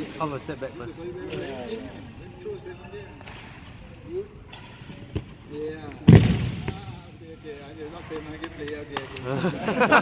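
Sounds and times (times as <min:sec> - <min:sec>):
large hall background noise: 0:00.0 - 0:10.0.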